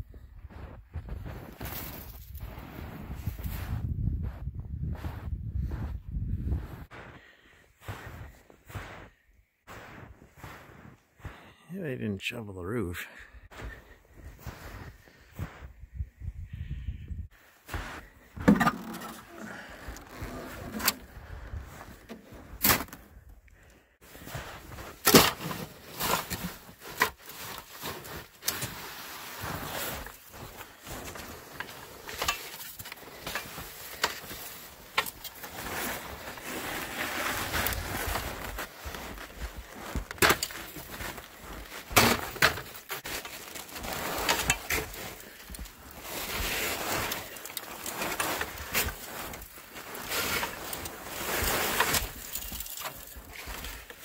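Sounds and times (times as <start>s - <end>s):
footsteps crunching in snow: 0.4s - 11.6s, 13.5s - 15.7s, 17.4s - 18.4s, 24.1s - 54.0s
ladder knocks and scrapes: 18.4s - 19.3s.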